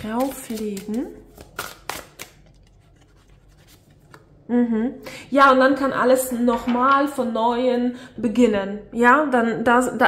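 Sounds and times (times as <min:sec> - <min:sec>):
cards rubbing and scraping: 0:00.0 - 0:04.2.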